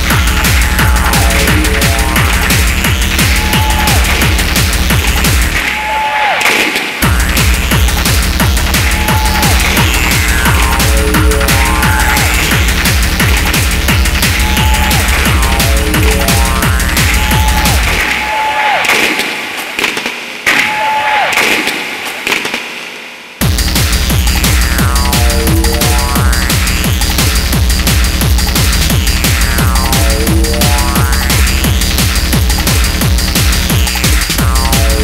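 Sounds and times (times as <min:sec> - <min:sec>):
high synth tone sliding down: 0:00.0 - 0:04.5, 0:08.8 - 0:18.1, 0:24.6 - 0:26.8, 0:29.4 - 0:31.7
deep bass: 0:00.0 - 0:05.7, 0:07.0 - 0:18.2, 0:23.4 - 0:35.0
techno kick drum: 0:00.0 - 0:05.8, 0:07.0 - 0:18.3, 0:23.4 - 0:35.0.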